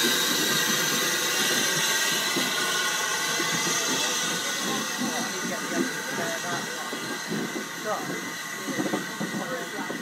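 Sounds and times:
railway coaches rolling: 0:00.0 - 0:10.0
people talking: 0:03.3 - 0:10.0.

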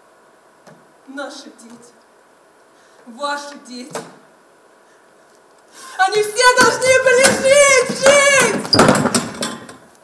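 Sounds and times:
person speaking: 0:05.9 - 0:08.8.

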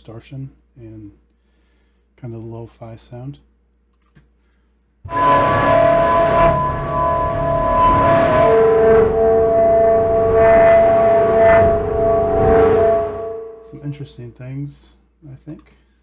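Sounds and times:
dark distorted drone: 0:05.1 - 0:14.0.

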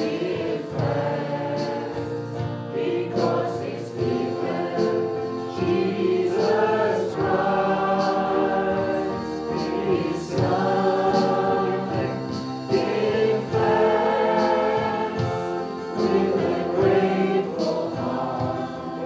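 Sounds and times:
drum and cymbal strikes: 0:00.0 - 0:19.0
group singing: 0:00.0 - 0:19.0
keyboard: 0:00.0 - 0:19.0.

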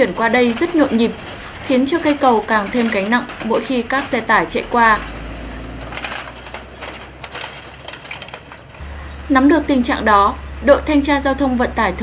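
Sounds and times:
steel deck plates clattering: 0:00.0 - 0:10.3
truck engine humming: 0:00.0 - 0:12.0.

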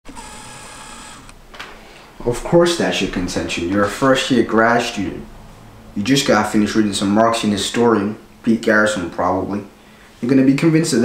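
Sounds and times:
lens autofocus motor whirring: 0:00.1 - 0:01.4.

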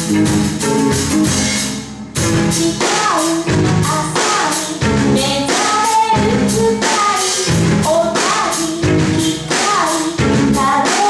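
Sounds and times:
bass guitar: 0:00.0 - 0:11.0
drum kit with cymbals: 0:00.0 - 0:11.0
electric guitar: 0:00.0 - 0:11.0
woman singing lead: 0:02.3 - 0:11.0.

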